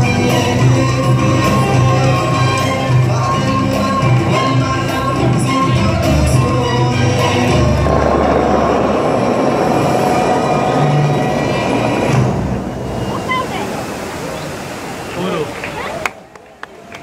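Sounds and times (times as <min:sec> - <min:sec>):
show music: 0:00.0 - 0:13.6
rush of water jets and spray: 0:00.0 - 0:17.0.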